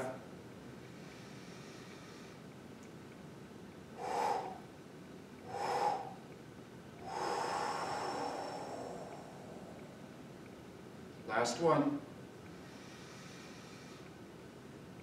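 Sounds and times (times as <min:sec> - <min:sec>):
man breathing deeply: 0:01.0 - 0:02.5, 0:03.9 - 0:04.7, 0:05.4 - 0:06.3, 0:07.0 - 0:10.4, 0:12.6 - 0:14.2.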